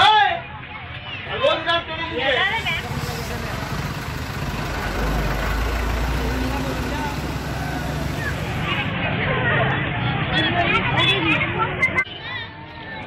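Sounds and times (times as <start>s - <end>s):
faint voices: 2.0s - 13.0s
street noise hiss: 2.1s - 9.1s
vehicle engine rumbling: 2.3s - 9.0s.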